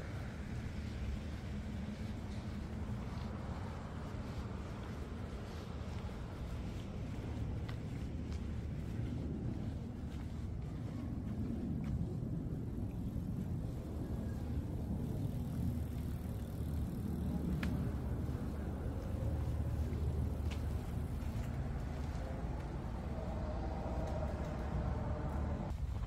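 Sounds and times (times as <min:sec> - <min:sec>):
low outdoor rumble: 0:00.0 - 0:26.0.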